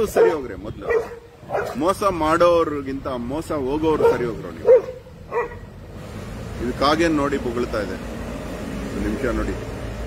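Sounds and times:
man speaking: 0.0 - 4.8.

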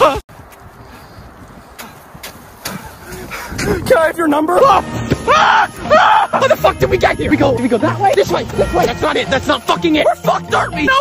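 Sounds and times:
wind noise on microphone: 0.0 - 6.0.

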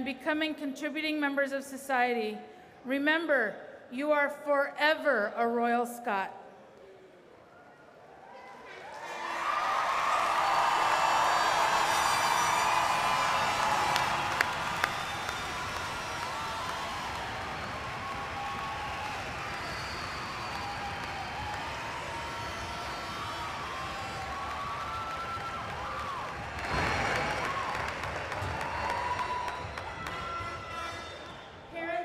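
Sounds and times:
crowd cheering: 8.2 - 31.7
crowd clapping: 8.8 - 31.4.

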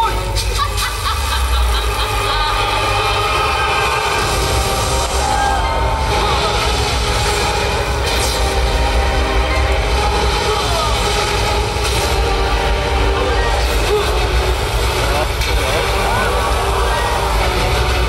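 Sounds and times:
dramatic music over speakers: 0.0 - 18.0
deep continuous rumble: 0.2 - 18.0.

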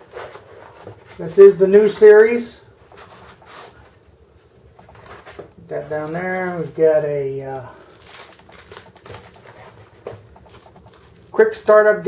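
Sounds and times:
packaging rustling: 2.8 - 4.1, 4.7 - 11.7
plastic packaging clicks: 7.5 - 11.4.

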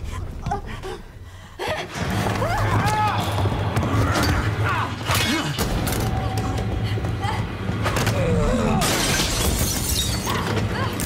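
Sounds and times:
glass shattering: 8.8 - 10.4.

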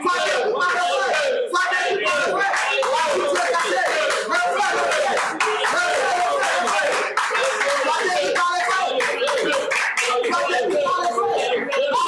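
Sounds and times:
congregation praying aloud: 0.0 - 12.0
hands clapping: 2.1 - 12.0.

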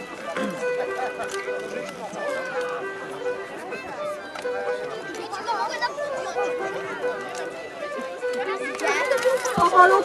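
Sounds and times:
background music with held tones: 0.0 - 10.0
crowd speech: 0.0 - 10.0.

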